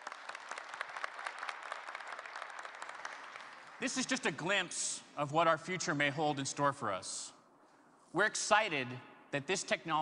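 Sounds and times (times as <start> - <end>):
audience applauding: 0.0 - 4.0
man speaking: 3.8 - 7.4, 8.1 - 10.0.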